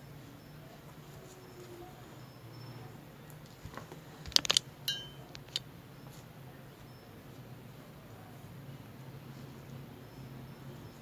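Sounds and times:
beads clinking in a dish: 0:04.3 - 0:05.6.

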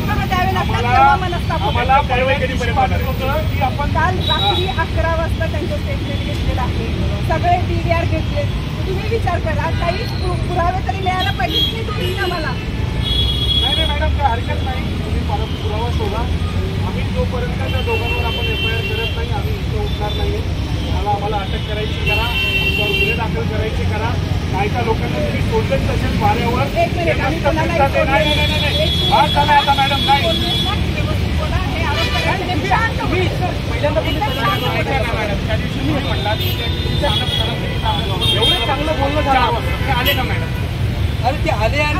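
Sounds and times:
voices arguing: 0:00.0 - 0:12.8, 0:13.7 - 0:41.9
road traffic rumble: 0:00.0 - 0:41.9
people talking at once: 0:13.6 - 0:41.9.

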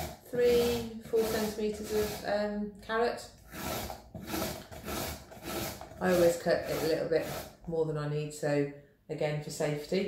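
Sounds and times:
carrot grating strokes: 0:00.0 - 0:02.4, 0:03.4 - 0:07.7.

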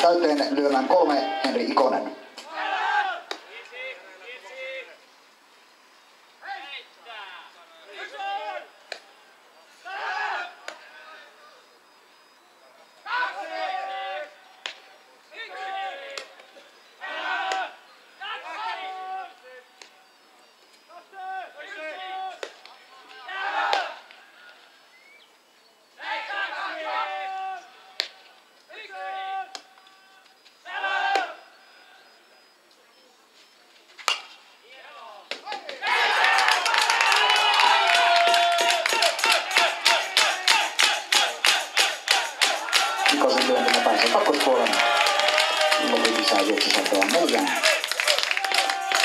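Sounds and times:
players shouting: 0:00.8 - 0:05.0, 0:06.4 - 0:09.1, 0:09.7 - 0:11.4, 0:13.0 - 0:16.4, 0:17.0 - 0:19.7, 0:21.0 - 0:24.7, 0:26.0 - 0:31.5, 0:34.1 - 0:49.0.

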